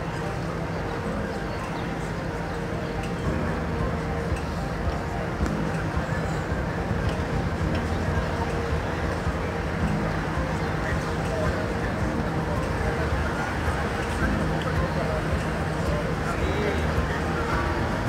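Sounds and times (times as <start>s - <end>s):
indistinct voices of passers-by: 0.0s - 18.0s
traffic rumble: 0.0s - 18.0s.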